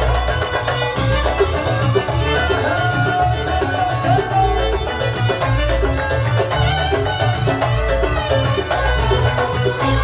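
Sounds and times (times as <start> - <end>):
arabic-style band playing: 0.0 - 10.0
pulsing drum beat: 0.0 - 10.0.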